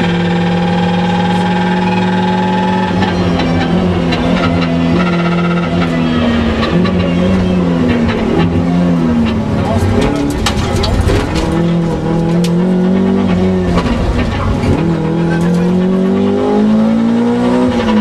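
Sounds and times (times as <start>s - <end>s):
car engine revving hard: 0.0s - 10.4s, 11.0s - 18.0s.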